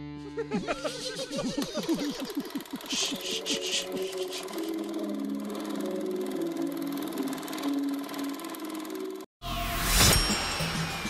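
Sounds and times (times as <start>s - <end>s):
machine whirring hum: 1.7s - 9.3s.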